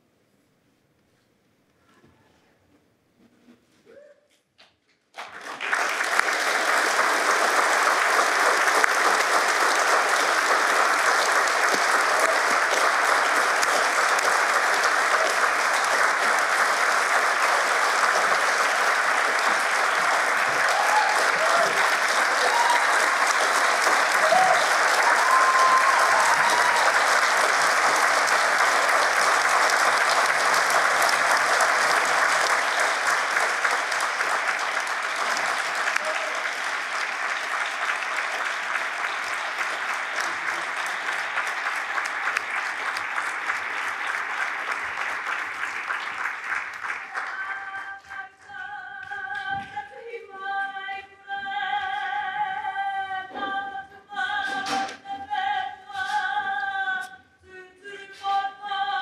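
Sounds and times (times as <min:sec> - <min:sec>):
audience applauding: 0:05.1 - 0:49.7.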